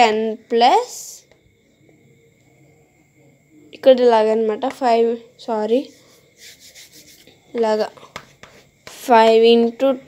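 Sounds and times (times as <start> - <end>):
chalk scraping on chalkboard: 5.8 - 7.4, 8.0 - 9.1.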